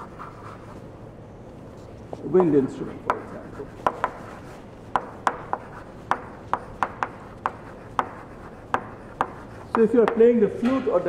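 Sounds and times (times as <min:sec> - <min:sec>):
chalk tapping on blackboard: 0:02.1 - 0:10.3.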